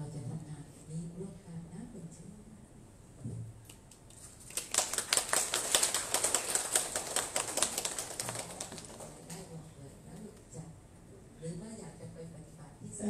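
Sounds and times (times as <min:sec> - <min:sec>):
audience applauding: 0:04.5 - 0:09.4.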